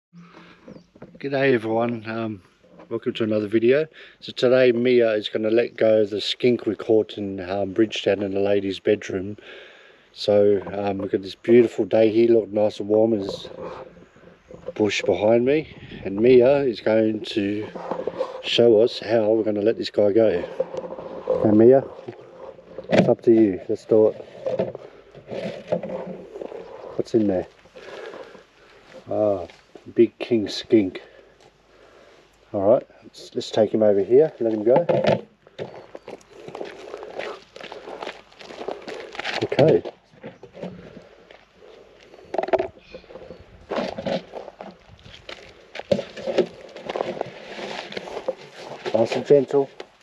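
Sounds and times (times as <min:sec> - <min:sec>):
footsteps crunching on gravel: 0:10.4 - 0:29.9, 0:35.5 - 0:50.0
plastic lid scraping open: 0:13.1 - 0:16.6, 0:17.2 - 0:19.6, 0:20.2 - 0:29.1, 0:34.5 - 0:36.6, 0:42.1 - 0:44.8, 0:45.8 - 0:49.7.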